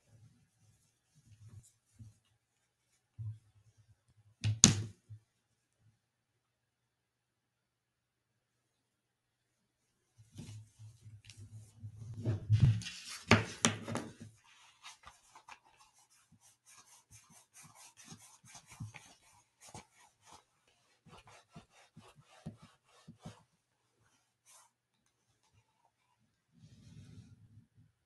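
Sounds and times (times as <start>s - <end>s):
gloved hands rubbing and rustling: 0.0s - 4.1s, 9.9s - 27.8s.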